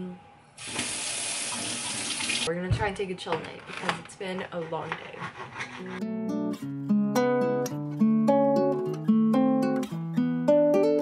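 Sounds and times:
water running from faucet: 0:00.6 - 0:02.5.

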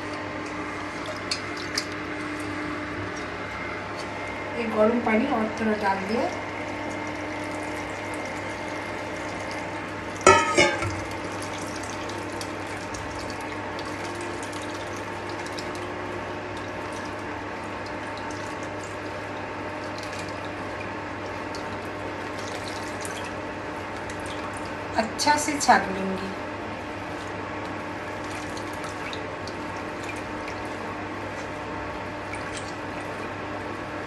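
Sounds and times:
wet squelches and drips: 0:00.0 - 0:04.5, 0:06.3 - 0:24.9, 0:26.7 - 0:34.0
appliance hum: 0:00.0 - 0:34.0
steel vessel clanking on metal: 0:10.2 - 0:11.0.

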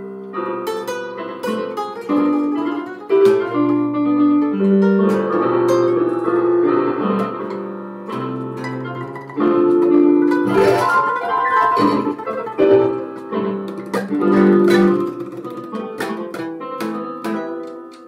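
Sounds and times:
electronic keyboard melody: 0:00.0 - 0:18.0.

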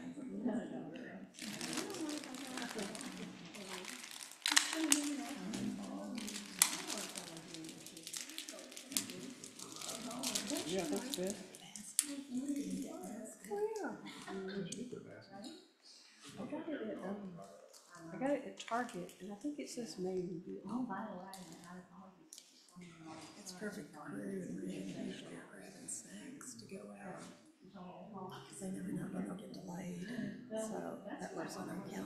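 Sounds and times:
rustling handling noise: 0:01.4 - 0:11.6.

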